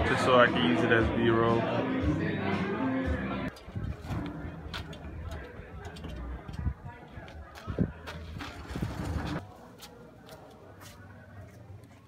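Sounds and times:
pallet jack wheels rumbling: 8.5s - 9.4s.

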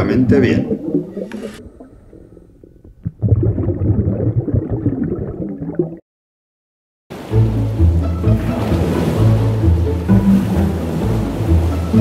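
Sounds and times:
underwater exhaust bubbles: 0.0s - 6.0s.

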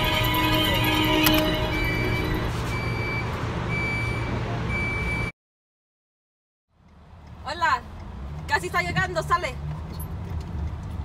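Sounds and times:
train car rumble: 0.0s - 4.7s
high electronic beeps: 0.1s - 5.3s.

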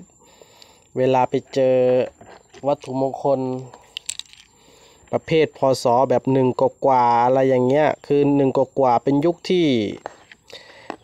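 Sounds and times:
man speaking: 1.0s - 3.9s, 5.1s - 10.1s.

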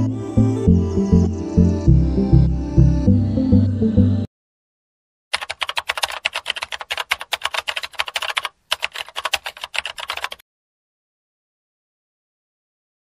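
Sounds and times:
keyboard typing clicks: 5.3s - 10.4s.

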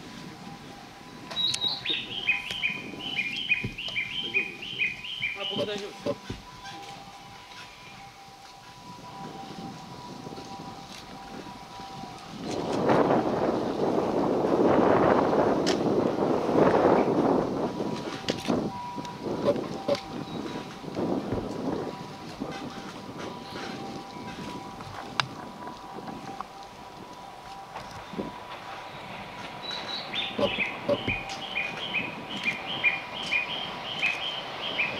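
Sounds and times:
train rumbling past: 0.0s - 34.9s.

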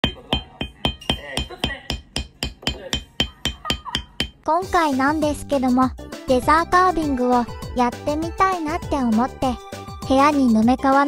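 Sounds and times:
mallet striking metal stamping tool: 0.0s - 4.4s.

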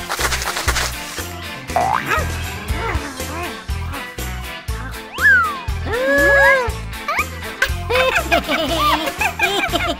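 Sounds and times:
children's music with bass beat: 0.1s - 9.9s.

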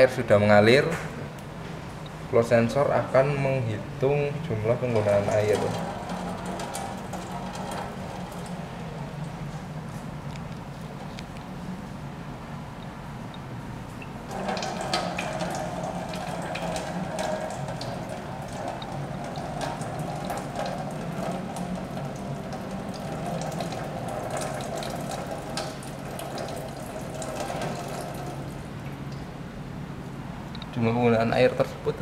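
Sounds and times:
water running from a tap: 5.0s - 9.3s, 14.3s - 29.2s.

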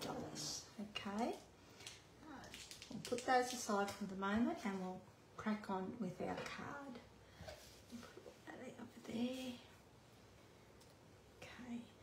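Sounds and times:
woman whispering: 11.4s - 12.0s.

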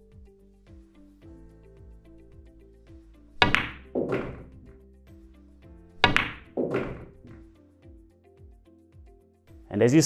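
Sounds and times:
background music with steady beat: 0.0s - 10.0s
ball dropping into pocket: 3.4s - 4.6s, 6.0s - 7.4s
pool balls clicking: 3.4s - 4.6s, 6.0s - 7.4s
cue tip striking ball: 3.4s - 4.7s, 6.0s - 7.4s.

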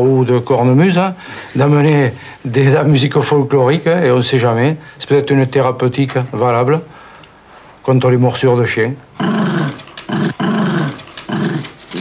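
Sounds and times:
dog growling: 9.2s - 12.0s.

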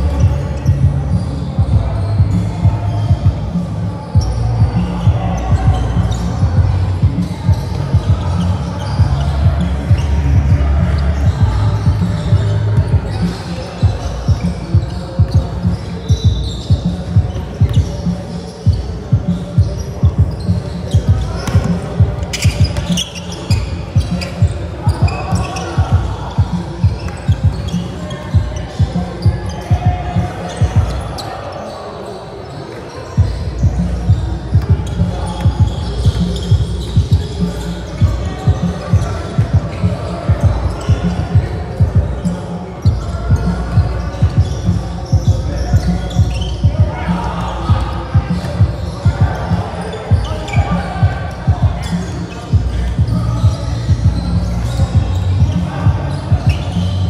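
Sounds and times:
players' voices echoing: 0.0s - 57.0s.

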